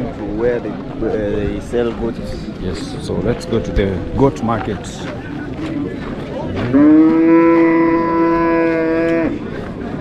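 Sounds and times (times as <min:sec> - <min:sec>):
cow mooing: 0:06.8 - 0:09.3.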